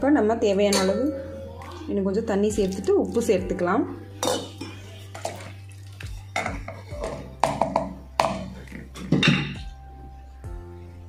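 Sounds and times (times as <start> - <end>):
background music: 0.0 - 11.0
wooden spoon stirring in pot: 4.4 - 9.2
spoon knocking against pot: 6.4 - 9.6.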